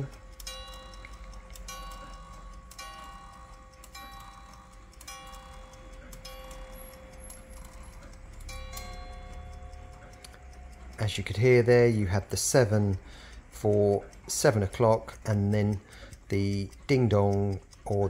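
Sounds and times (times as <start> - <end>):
clock striking the hour: 0.0 - 18.0.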